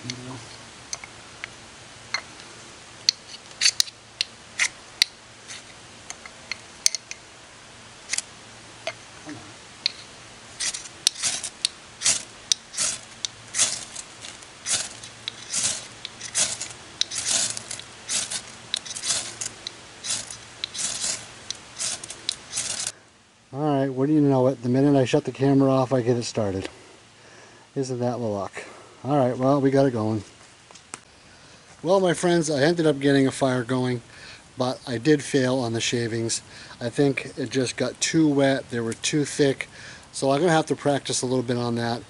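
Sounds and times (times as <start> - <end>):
ferro rod scraping: 5.4 - 6.3, 9.3 - 23.0.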